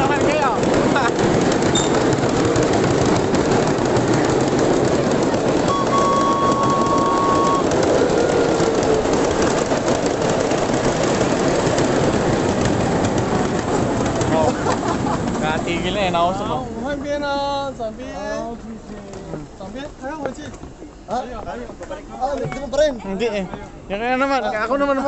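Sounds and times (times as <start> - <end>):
miniature train wheels on rails: 0.0 - 22.9
short steady high tone: 5.7 - 7.7.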